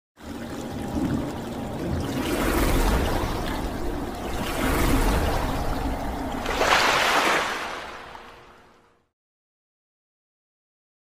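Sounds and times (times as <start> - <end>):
water pouring and splashing: 0.2 - 8.7.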